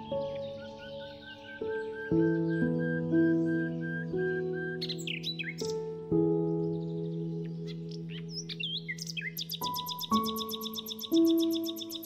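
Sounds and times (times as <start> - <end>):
birds chirping: 0.0 - 12.0
soft relaxation music: 0.0 - 12.0.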